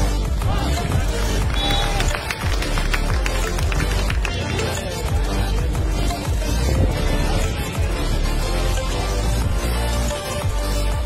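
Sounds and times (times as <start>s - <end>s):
music with steady bass line: 0.0s - 11.0s.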